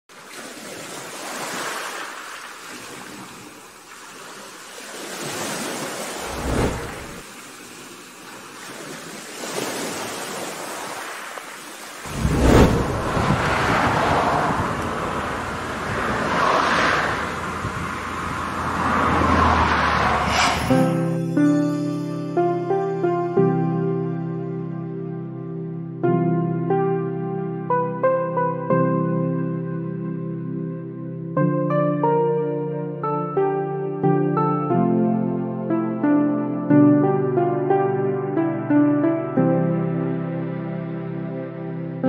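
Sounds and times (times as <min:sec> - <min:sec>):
ocean surf: 0:00.1 - 0:21.1
wind: 0:00.1 - 0:36.6.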